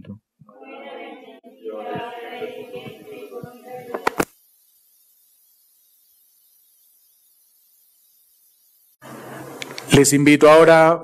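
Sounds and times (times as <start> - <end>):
voices chanting liturgical response: 0.5 - 4.3.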